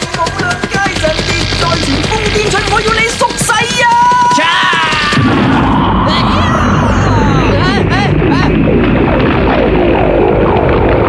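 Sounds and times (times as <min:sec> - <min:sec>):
continuous energy roar: 0:00.0 - 0:11.0
low rumble: 0:00.0 - 0:11.0
falling warbling tones: 0:00.1 - 0:11.0.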